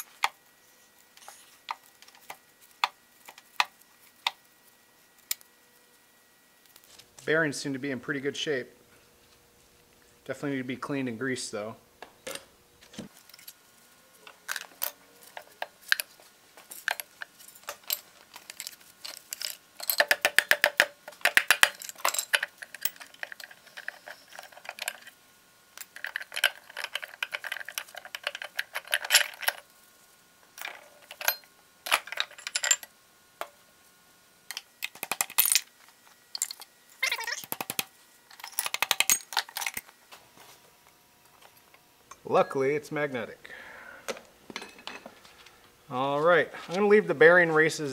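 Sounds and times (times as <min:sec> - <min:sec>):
metal parts clinking and rattling: 0:14.2 - 0:25.2, 0:25.8 - 0:29.7, 0:30.6 - 0:33.5, 0:34.5 - 0:39.9.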